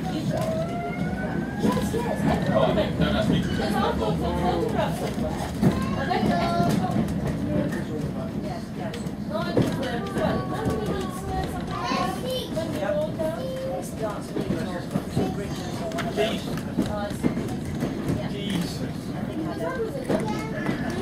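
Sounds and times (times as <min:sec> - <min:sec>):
passengers chattering: 0:00.0 - 0:21.0
train carriage rumble: 0:00.0 - 0:21.0.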